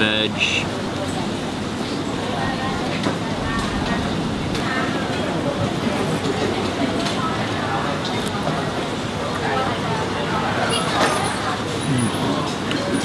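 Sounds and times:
diners chattering: 0:00.0 - 0:13.0.

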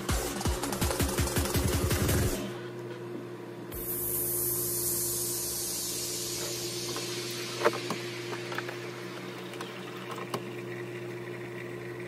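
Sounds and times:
electrical hum: 0:00.0 - 0:12.0
air hissing: 0:03.7 - 0:09.7.

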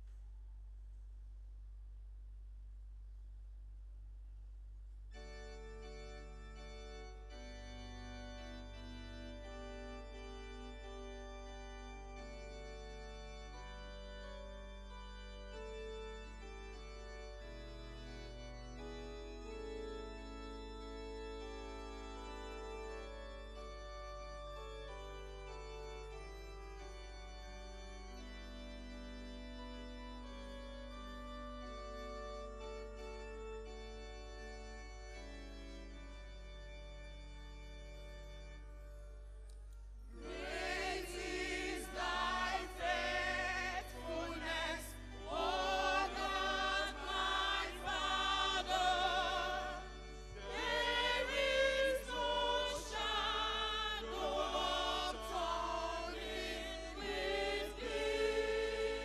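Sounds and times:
organ playing held chords: 0:05.1 - 0:59.0.

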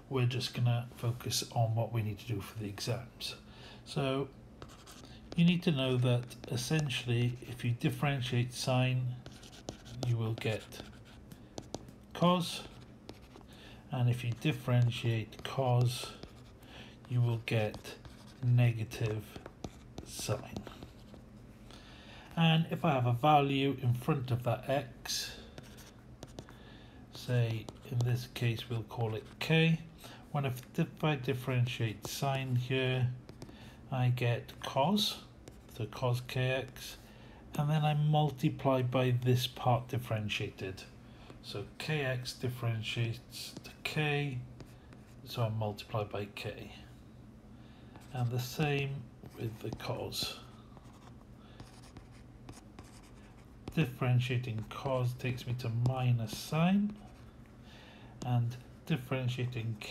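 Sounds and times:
steady low hum: 0:00.0 - 0:59.9
stylus scratching on screen: 0:04.6 - 0:21.4, 0:48.0 - 0:57.3
stylus tapping and clicking: 0:11.3 - 0:12.0.

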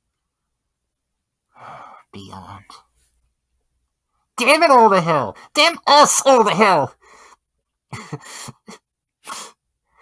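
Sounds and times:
person sighing: 0:01.6 - 0:02.0
person speaking: 0:01.6 - 0:03.2, 0:04.3 - 0:07.3.

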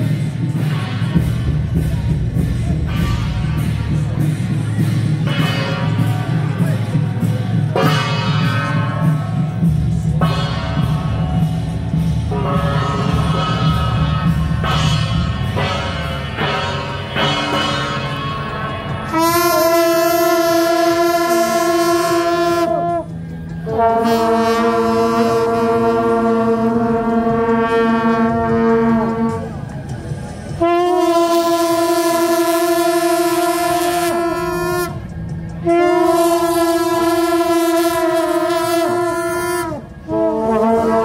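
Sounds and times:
brass horns blasting: 0:02.9 - 0:04.4, 0:10.2 - 0:29.6, 0:30.6 - 0:41.0.

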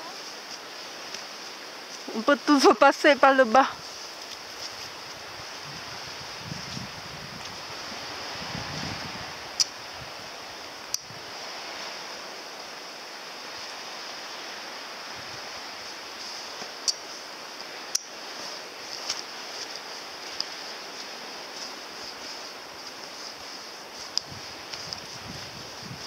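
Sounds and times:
sea: 0:00.0 - 0:26.0
wind: 0:00.0 - 0:26.0.

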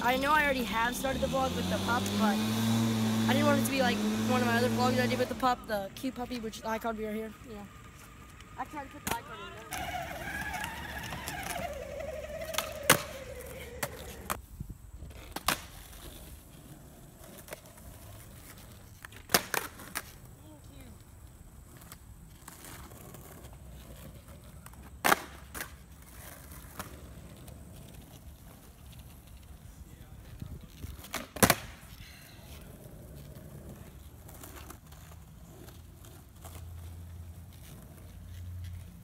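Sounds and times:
skateboard wheels rolling on asphalt: 0:00.0 - 0:39.0
skateboard pops and clacks: 0:08.9 - 0:14.4, 0:15.2 - 0:16.0, 0:19.0 - 0:20.2, 0:24.6 - 0:27.0, 0:30.8 - 0:31.9.

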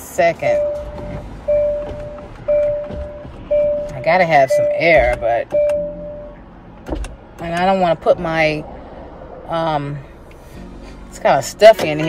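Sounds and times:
car warning chime: 0:00.2 - 0:06.6.

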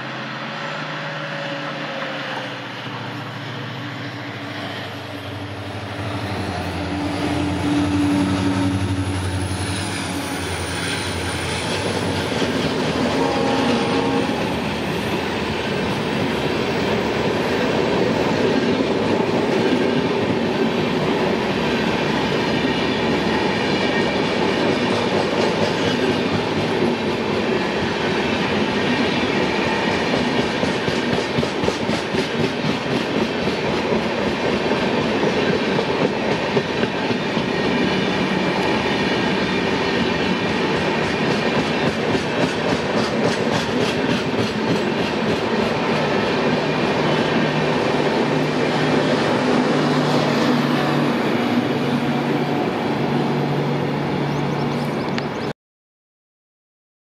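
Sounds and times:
locomotive engine drone: 0:00.0 - 0:18.2, 0:45.4 - 0:55.5
train wheels rumbling on rails: 0:00.0 - 0:55.4
rhythmic clickety-clack: 0:29.9 - 0:37.5, 0:40.0 - 0:46.4.

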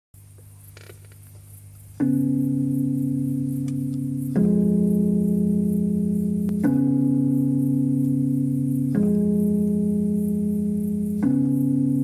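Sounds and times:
low electrical hum with hiss: 0:00.2 - 0:12.0
faint creaks: 0:00.3 - 0:01.6.

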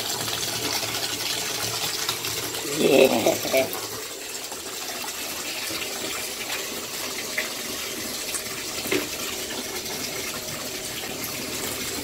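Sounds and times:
bathtub tap running: 0:00.0 - 0:12.0.

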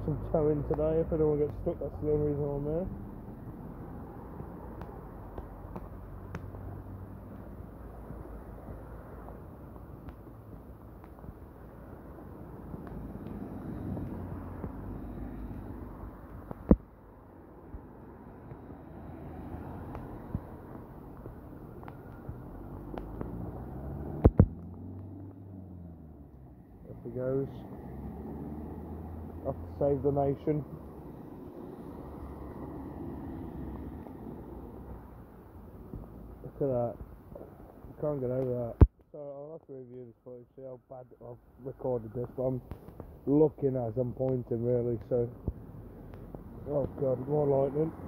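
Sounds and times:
lorry engine and tyres passing: 0:00.0 - 0:38.4, 0:41.6 - 0:48.0.

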